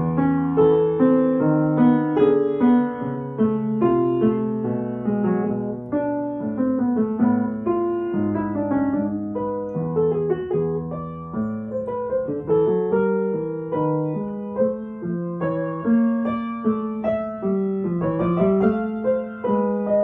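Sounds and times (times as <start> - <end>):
upright piano playing: 0.0 - 20.0.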